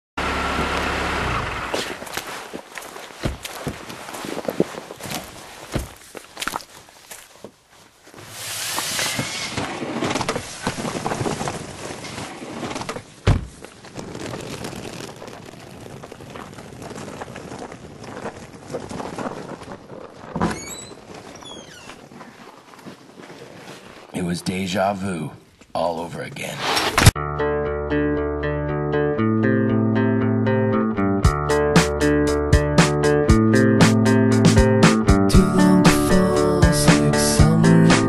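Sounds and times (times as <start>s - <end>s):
footsteps: 1.6s - 24.4s
ski gear being handled: 1.7s - 24.2s
thud: 12.9s - 13.6s
short high squeaks: 20.4s - 22.4s.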